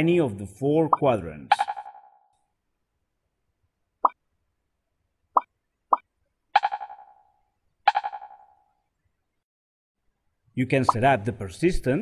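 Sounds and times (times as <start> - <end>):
echoing pinging tones: 1.5 - 2.4, 5.4 - 8.8.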